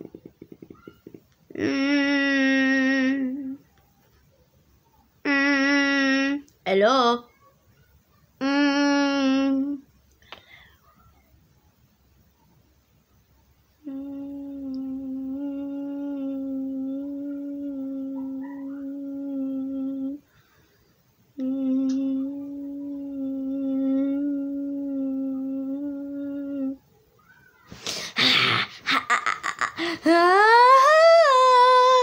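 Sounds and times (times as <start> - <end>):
person humming steady notes: 13.8 - 20.3, 21.4 - 26.8, 28.3 - 32.0.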